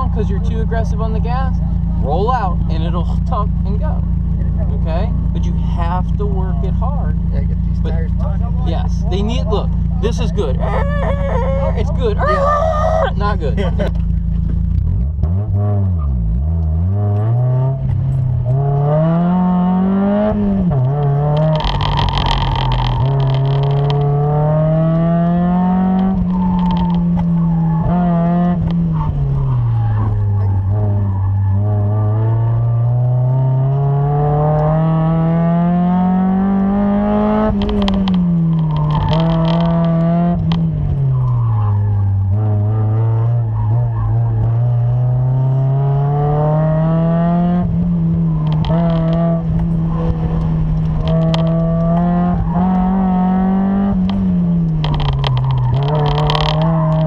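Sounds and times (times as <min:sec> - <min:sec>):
car engine revving: 0:00.0 - 0:57.0
tyres squealing: 0:10.1 - 0:13.5.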